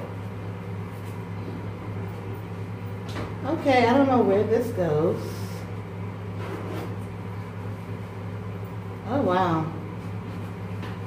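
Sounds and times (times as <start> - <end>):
air conditioner humming: 0.0 - 11.0.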